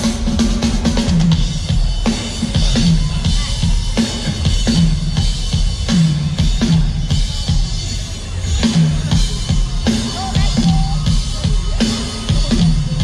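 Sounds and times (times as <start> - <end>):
live funk band playing: 0.0 - 13.0.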